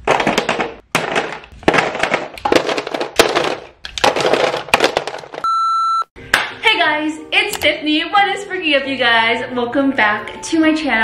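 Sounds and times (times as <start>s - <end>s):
test-pattern beep: 5.4s - 6.1s.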